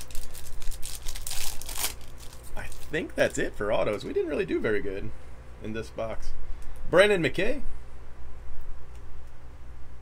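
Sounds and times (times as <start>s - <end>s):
wrapper crinkling and tearing: 0.0s - 3.4s.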